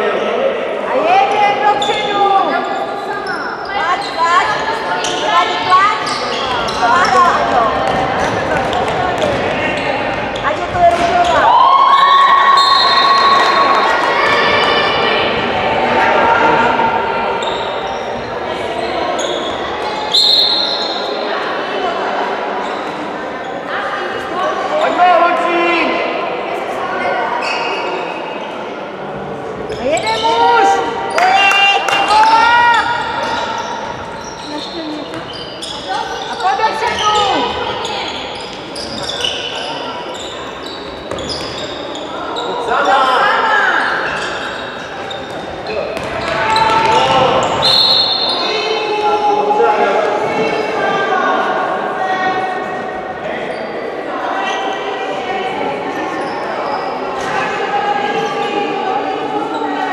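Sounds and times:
players calling and shouting: 0.0 - 59.9
ball bouncing on hall floor: 6.4 - 11.5, 40.9 - 41.7, 45.1 - 47.7.

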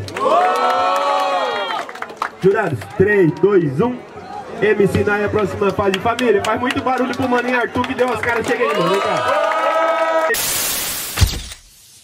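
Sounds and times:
burst of hiss-like noise: 10.4 - 12.0.

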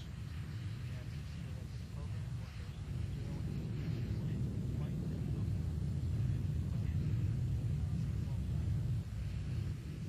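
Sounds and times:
rocket engine low rumble: 0.0 - 10.0.

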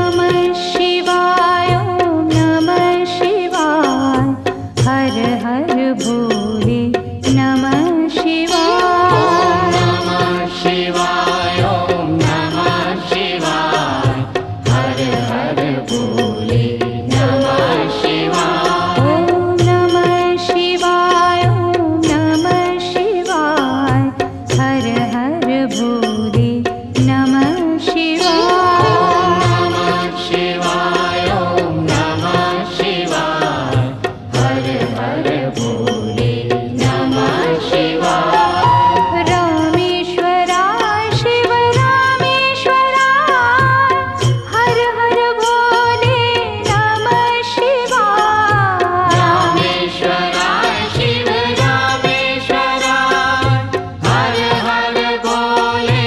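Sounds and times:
instrumental accompaniment: 0.0 - 56.0
steady percussion beat: 0.0 - 56.0
person chanting: 8.5 - 10.8, 28.2 - 30.9, 36.8 - 39.6
drum strokes: 23.8 - 41.8.

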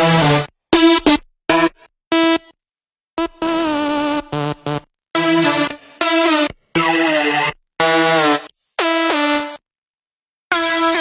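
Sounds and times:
synthesizer notes: 4.3 - 9.4.

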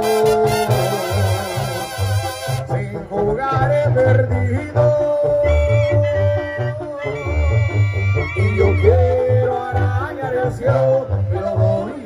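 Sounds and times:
clarinets and brass melody: 0.0 - 3.6, 4.5 - 12.0
pulsing bass beat: 3.8 - 10.1.

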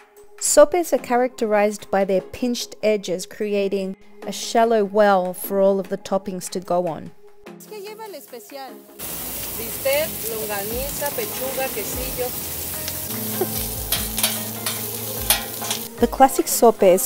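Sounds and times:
food sizzling on griddle: 7.6 - 16.1
spatulas scraping on griddle: 11.0 - 16.0.

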